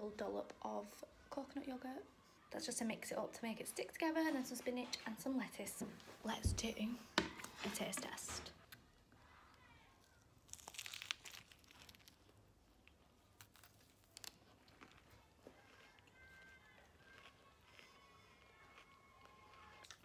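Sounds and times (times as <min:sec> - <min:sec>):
faint chewing: 0:10.0 - 0:20.0
crunchy bite into wrap: 0:10.4 - 0:20.0.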